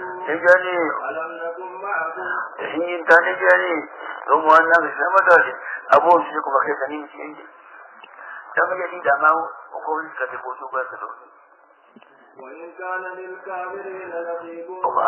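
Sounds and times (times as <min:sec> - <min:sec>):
man speaking: 0:08.6 - 0:11.3.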